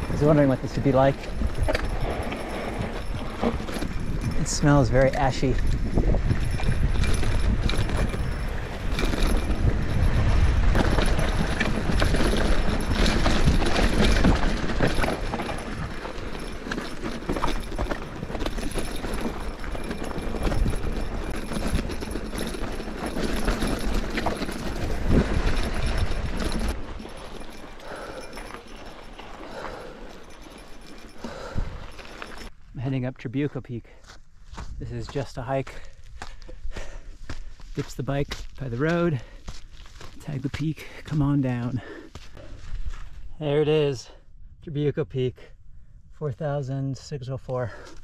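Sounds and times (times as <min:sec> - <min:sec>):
wind buffeting microphone: 0:00.0 - 0:32.6
mountain bike rattling: 0:00.0 - 0:33.1, 0:35.5 - 0:44.2, 0:47.6 - 0:48.0
tyres crunching on gravel: 0:00.0 - 0:43.3.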